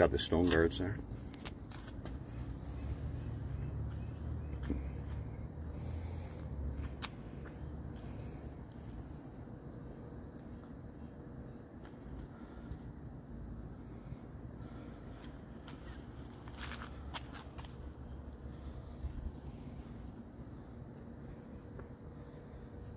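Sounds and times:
low outdoor rumble: 0.0s - 22.9s.

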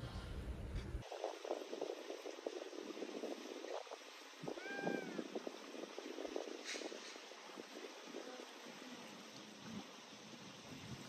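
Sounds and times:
wind rumble on microphone: 0.0s - 11.0s
meow-like animal cry: 4.5s - 5.3s.

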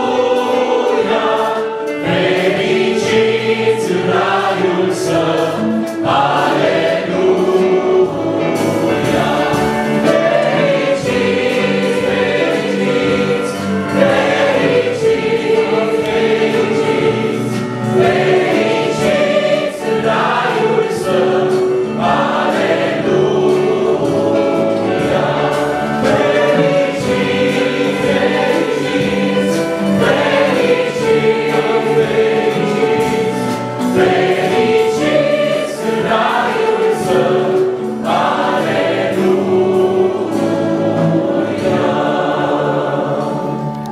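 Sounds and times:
choir singing a hymn: 0.0s - 43.9s.

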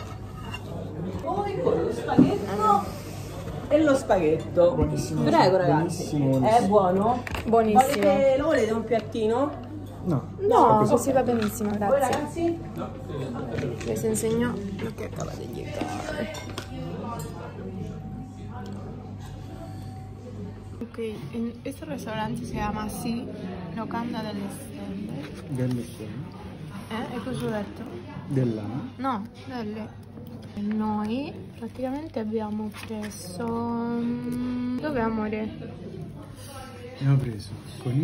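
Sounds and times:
indistinct talk: 0.0s - 38.0s.

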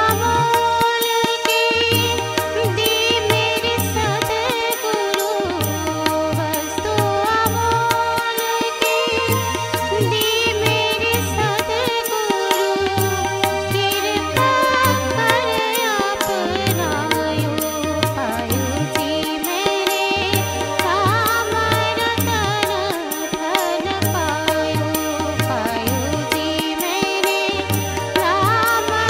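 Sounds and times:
tabla beat: 0.0s - 29.0s
woman singing: 0.0s - 29.0s.

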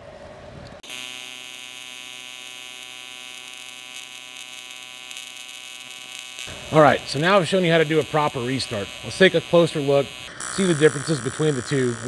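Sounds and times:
welding arc buzzing: 0.8s - 12.0s.

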